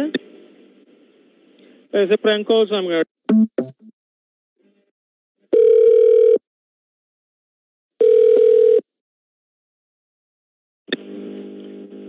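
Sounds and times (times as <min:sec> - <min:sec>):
telephone ringing tone beeps: 0:05.5 - 0:06.4, 0:08.0 - 0:08.8.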